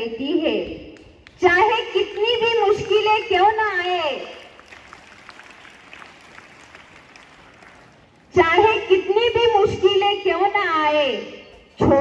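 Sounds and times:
audience clapping: 4.2s - 8.3s.

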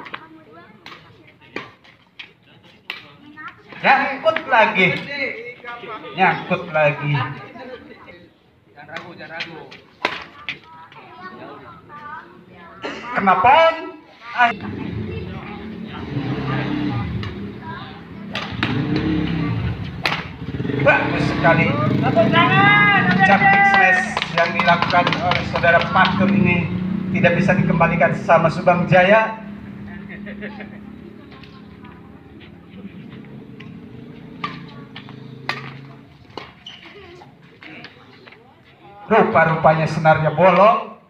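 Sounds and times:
rackets striking shuttlecock: 18.2s - 20.4s, 33.2s - 36.6s.

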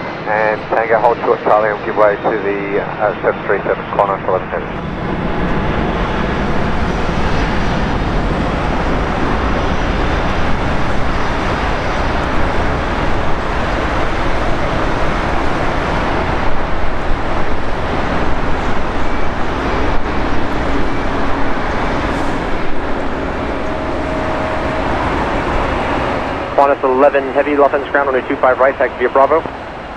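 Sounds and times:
jet engines running: 0.0s - 29.9s.

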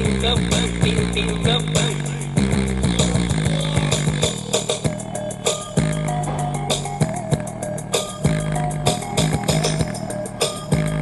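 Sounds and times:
deep bass line: 0.0s - 11.0s
steady drum beat: 0.0s - 11.0s.

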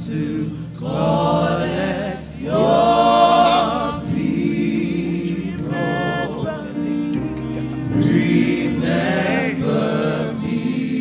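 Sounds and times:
group singing gospel song: 0.0s - 11.0s.

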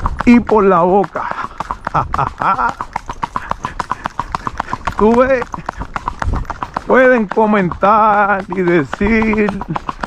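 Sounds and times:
hooves on paved road: 0.0s - 10.0s.

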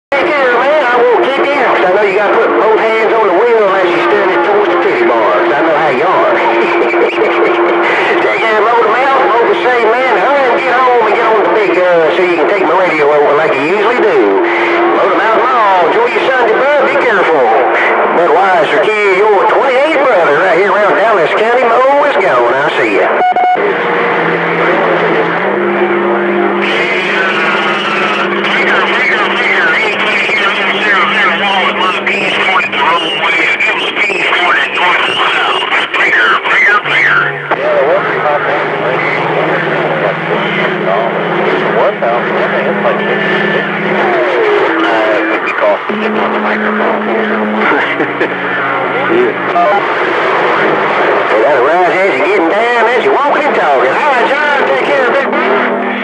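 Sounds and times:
garbled radio voices: 0.1s - 56.0s.

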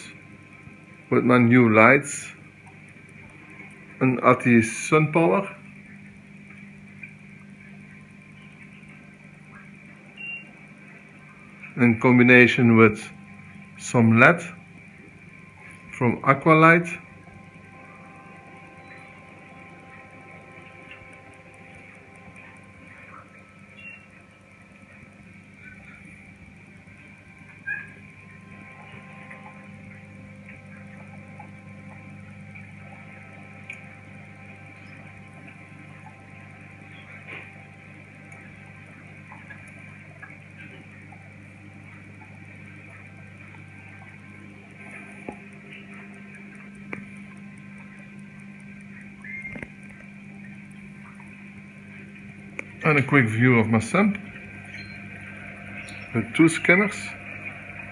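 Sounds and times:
aquarium pumps humming: 0.0s - 57.9s
faint clicks and knocks: 17.3s - 52.8s.

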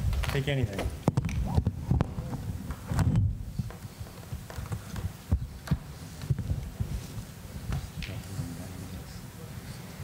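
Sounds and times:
low thumps on microphone: 0.8s - 8.0s.

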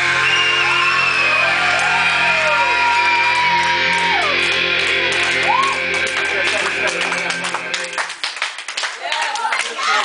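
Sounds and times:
people clapping: 0.0s - 10.0s.

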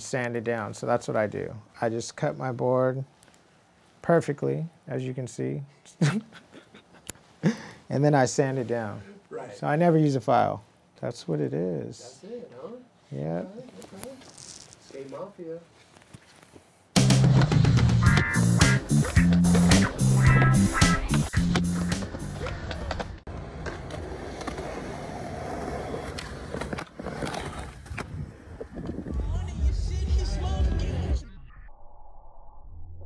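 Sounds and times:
music with steady low beat: 17.0s - 22.8s
skateboard clacking and popping: 17.0s - 24.6s
skateboard wheels rolling: 17.0s - 29.4s.

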